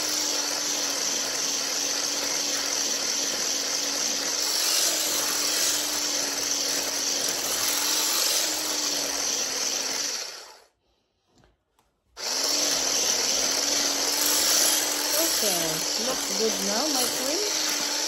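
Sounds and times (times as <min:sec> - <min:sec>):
hand blender whipping cream: 0:00.0 - 0:10.7, 0:12.2 - 0:18.0.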